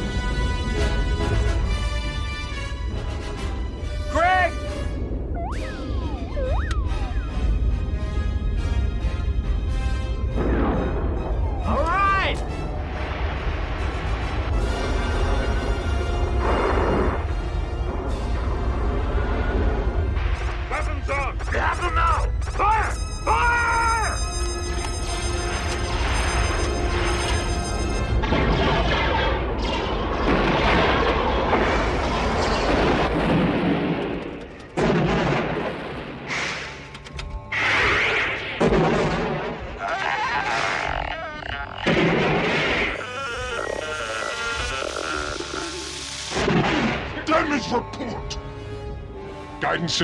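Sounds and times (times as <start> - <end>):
dramatic music: 0.0 - 50.0
explosions with rumbling decay: 4.8 - 11.7, 12.7 - 21.6, 25.9 - 36.6, 37.6 - 39.8, 41.8 - 43.0.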